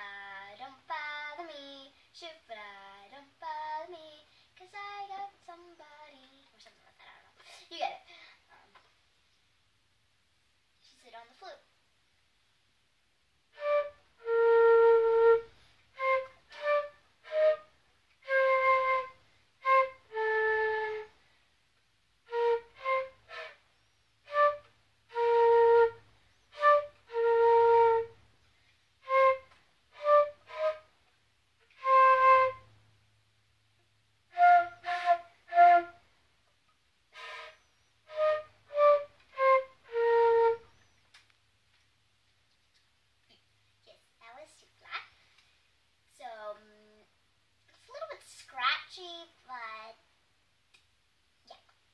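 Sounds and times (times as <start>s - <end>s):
flute melody: 13.5s - 21.2s, 22.3s - 28.2s, 29.0s - 31.0s, 31.6s - 32.8s, 34.3s - 36.0s, 37.1s - 40.9s.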